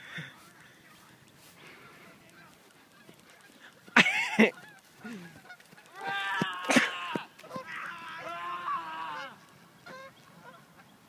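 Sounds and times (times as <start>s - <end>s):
geese honking: 0.4s - 11.0s.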